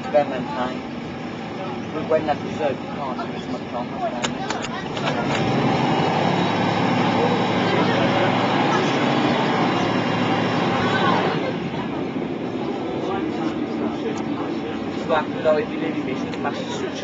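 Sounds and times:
bus diesel engine under load: 0:00.0 - 0:17.0.

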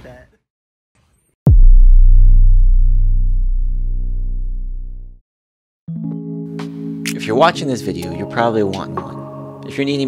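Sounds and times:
synthesized deep bass tone: 0:01.5 - 0:05.2.

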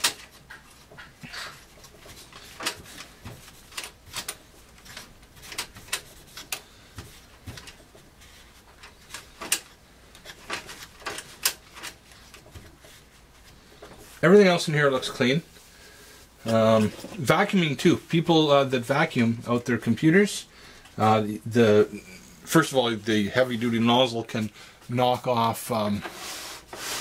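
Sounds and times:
cloth rubbing and scratching: 0:00.3 - 0:09.4, 0:10.2 - 0:17.5, 0:26.0 - 0:27.0.

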